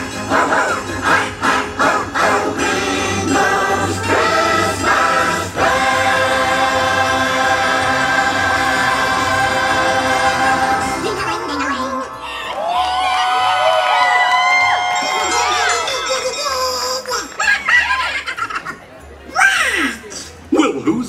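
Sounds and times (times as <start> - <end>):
choir singing: 0.0 - 12.9.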